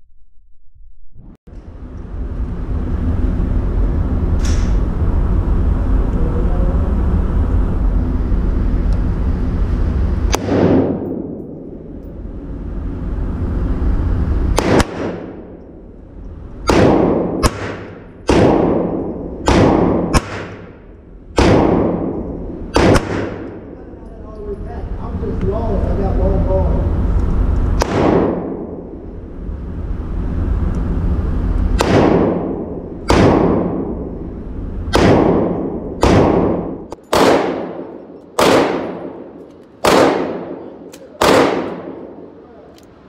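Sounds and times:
low rumble: 0.0s - 43.0s
pistol shots with reverb: 10.3s - 11.5s, 14.5s - 15.6s, 16.6s - 23.8s, 27.8s - 28.9s, 31.8s - 34.0s, 34.9s - 42.4s.

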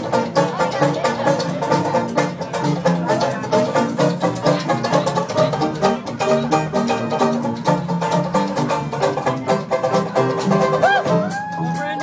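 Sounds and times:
banjo strumming: 0.0s - 12.0s
jazz band playing: 0.0s - 12.0s.

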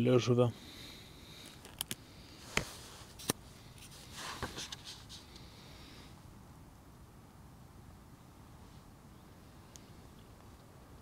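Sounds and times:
notebook pages turning: 2.6s - 5.2s.

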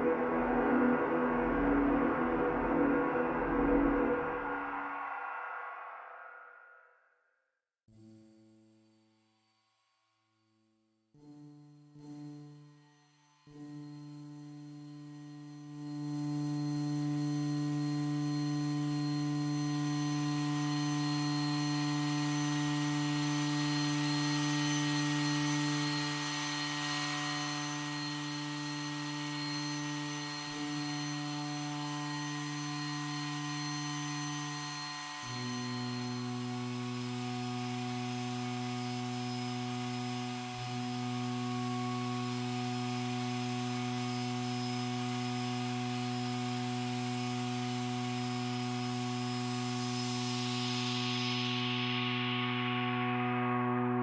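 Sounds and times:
electronic buzz drone: 0.0s - 6.6s, 11.2s - 54.0s.

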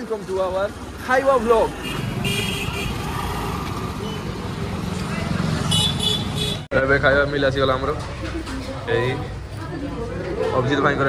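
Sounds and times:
motorbike engines running: 0.0s - 11.0s.

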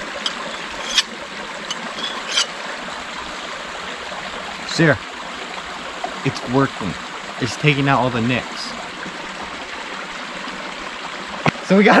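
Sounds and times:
knife blade scraping stone: 0.0s - 2.6s
creek running: 0.0s - 12.0s.

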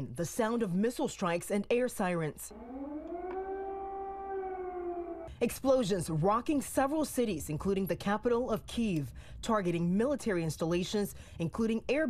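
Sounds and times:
air-raid siren: 2.5s - 5.3s.

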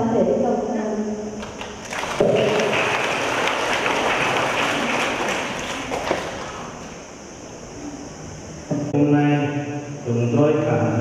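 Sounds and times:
congregation applauding: 1.4s - 7.1s.

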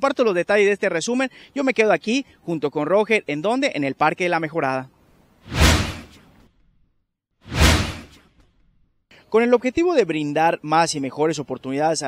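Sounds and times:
whoosh sound effect: 5.4s - 6.3s, 7.5s - 8.3s.

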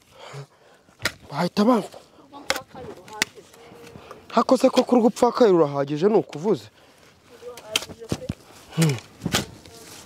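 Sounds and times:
digging tool chopping earth: 1.0s - 1.3s, 7.6s - 9.6s.

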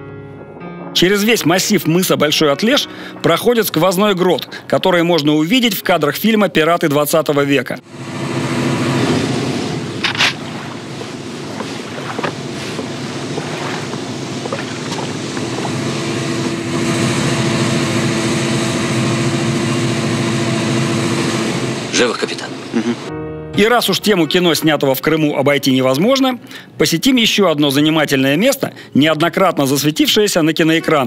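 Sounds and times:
ship engine droning: 7.8s - 23.1s
sea and wind noise: 8.6s - 16.6s.

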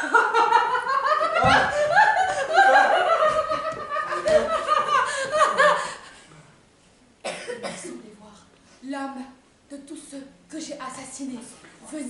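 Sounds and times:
rough cough: 7.2s - 8.0s.

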